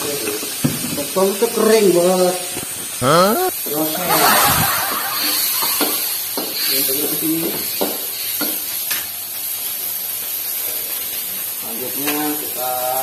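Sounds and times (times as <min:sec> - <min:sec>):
stir-fry sizzling in a wok: 0:00.0 - 0:13.0.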